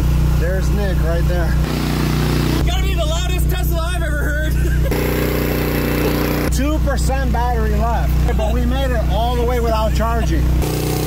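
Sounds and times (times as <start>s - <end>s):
gasoline generator engine running: 0.0s - 11.0s.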